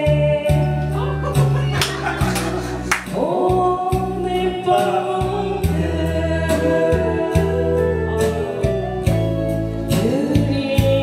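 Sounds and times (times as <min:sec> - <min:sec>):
karaoke backing track: 0:00.0 - 0:11.0.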